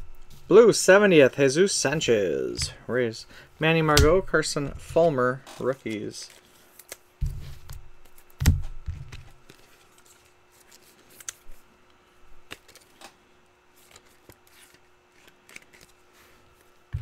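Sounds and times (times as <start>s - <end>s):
cards clicking and rustling: 5.5s - 11.6s, 12.4s - 17.0s.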